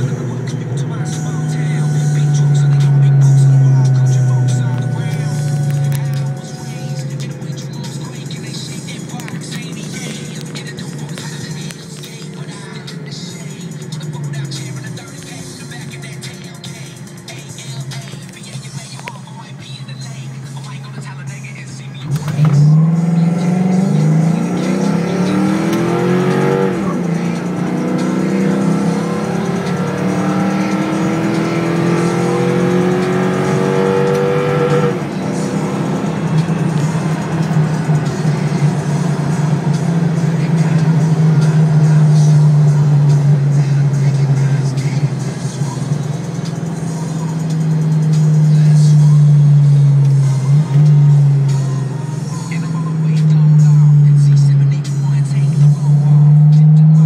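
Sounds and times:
car engine accelerating through gears: 0.0 - 57.0.

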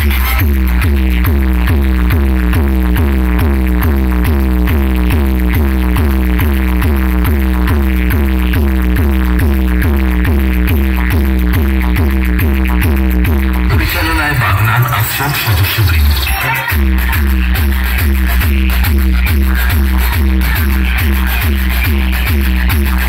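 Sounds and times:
loud electronic dance music: 0.0 - 23.0.

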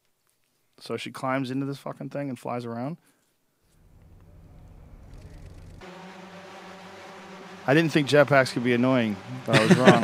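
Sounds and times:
drone rotors humming: 3.8 - 10.0.

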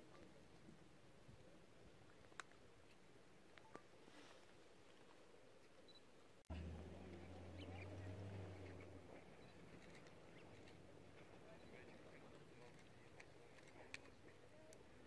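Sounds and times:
low steady rumble: 6.5 - 14.2.

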